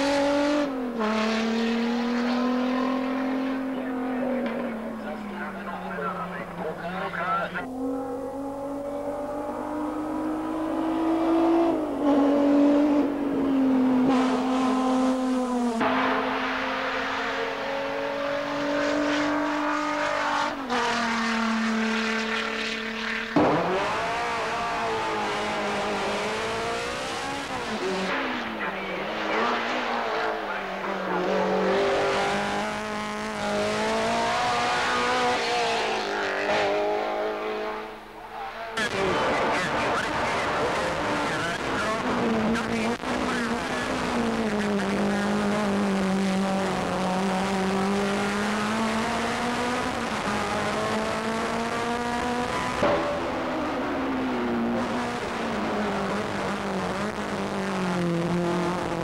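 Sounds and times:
racing car engines at full throttle: 0.0 - 59.0.

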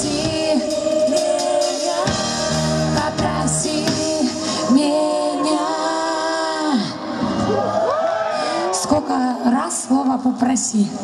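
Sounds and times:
pop-rock band music: 0.0 - 5.6
woman singing: 0.0 - 7.0.

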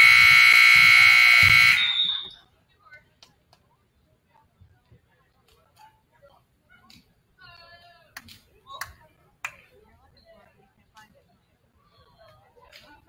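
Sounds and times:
held call with wavering pitch: 0.0 - 2.3.

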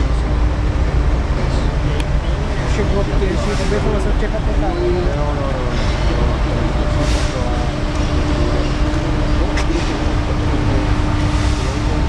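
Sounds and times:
distant voices: 0.0 - 12.0
faint hum: 0.0 - 12.0
vehicle engine rumble: 0.0 - 12.0.

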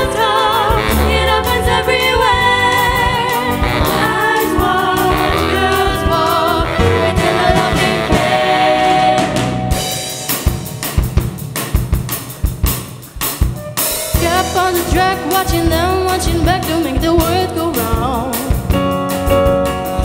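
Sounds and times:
band with singers playing pop: 0.0 - 20.0
drum kit hits: 0.0 - 20.0.

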